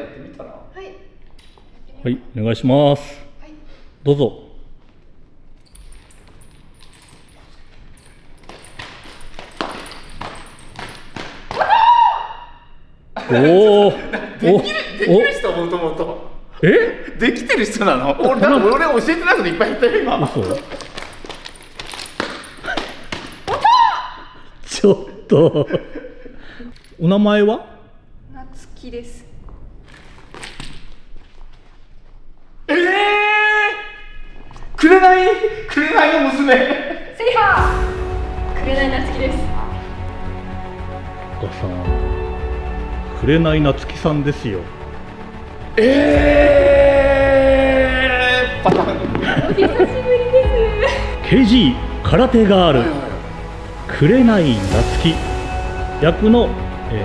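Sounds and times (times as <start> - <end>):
woman's high-pitched martial-arts shout: 11.6 - 12.5, 23.5 - 24.3
person shouting: 32.7 - 34.0, 45.8 - 48.7.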